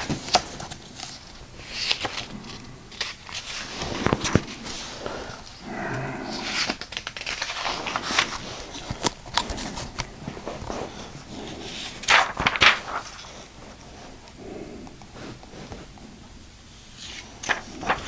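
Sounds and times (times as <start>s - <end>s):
book pages turning: 0.0s - 16.0s, 16.9s - 18.0s.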